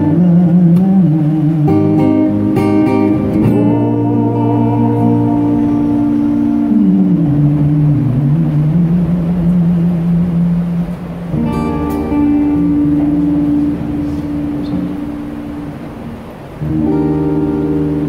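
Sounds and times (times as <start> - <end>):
acoustic guitar chords strummed: 0.0 - 18.0.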